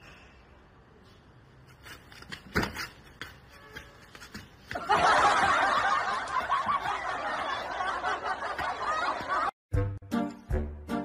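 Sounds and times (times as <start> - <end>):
people laughing: 4.8 - 9.6.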